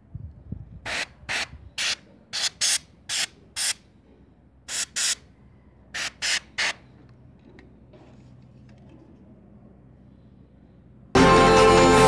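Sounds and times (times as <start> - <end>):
compressed air blasts hissing: 0.8 - 3.9, 4.7 - 5.2, 6.0 - 6.9.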